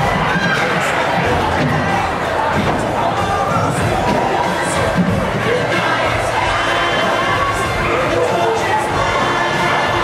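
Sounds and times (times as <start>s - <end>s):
musical accompaniment: 0.0s - 10.0s.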